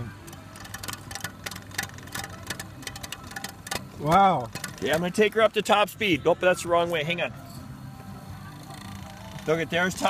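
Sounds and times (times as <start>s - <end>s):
irregular clicks and crackles: 0.2s - 5.3s.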